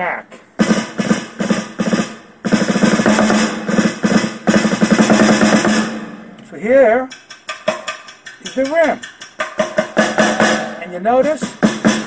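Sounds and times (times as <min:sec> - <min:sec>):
electronic snare drum roll: 0:00.5 - 0:12.0.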